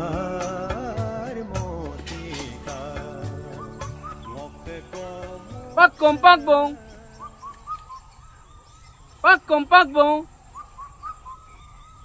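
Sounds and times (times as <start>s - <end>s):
faint bird calls: 3.3s - 12.0s.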